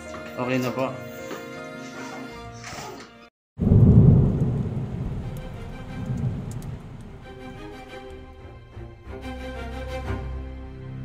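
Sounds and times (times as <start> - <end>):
thunder rumbling: 3.6 - 8.2
rain: 3.6 - 8.6.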